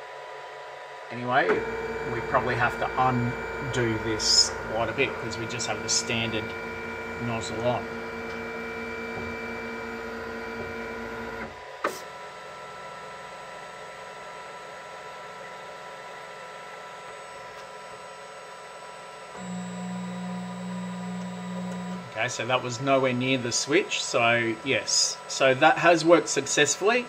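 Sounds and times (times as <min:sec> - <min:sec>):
stepper motor whine: 0:01.1 - 0:27.0
low-pitched motor tone: 0:01.5 - 0:11.5, 0:19.4 - 0:23.5.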